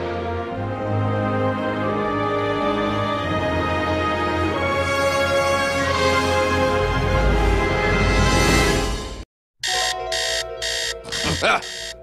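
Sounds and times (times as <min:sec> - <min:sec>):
digital alarm clock beeping: 0:09.6 - 0:12.0.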